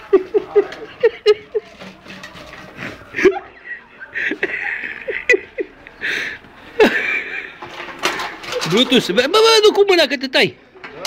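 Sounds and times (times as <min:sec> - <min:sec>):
man laughing: 0:00.0 - 0:01.7, 0:03.1 - 0:05.8, 0:06.8 - 0:07.5.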